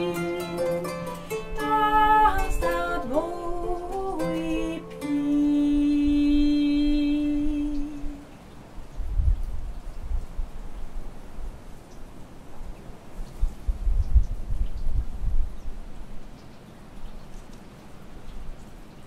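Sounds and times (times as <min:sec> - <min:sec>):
kora plucked: 0:00.0 - 0:08.1
woman singing: 0:00.0 - 0:08.3.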